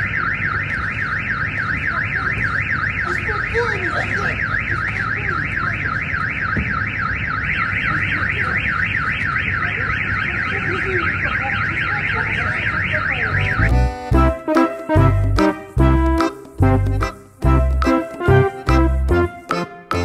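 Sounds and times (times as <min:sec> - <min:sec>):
car alarm siren warbling: 0:00.0 - 0:14.0
faint voices: 0:01.7 - 0:06.4
keyboard music with heavy bass: 0:13.3 - 0:20.0.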